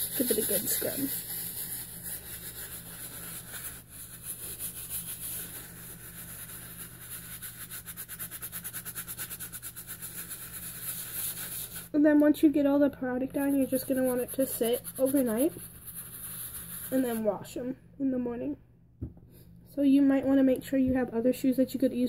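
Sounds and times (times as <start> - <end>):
brush scrubbing a sneaker: 0.0 - 11.9, 13.4 - 17.2.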